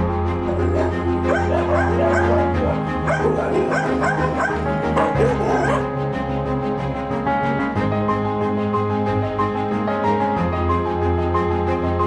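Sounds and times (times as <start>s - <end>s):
background music: 0.0s - 12.0s
dogs yipping and whining: 0.4s - 5.9s.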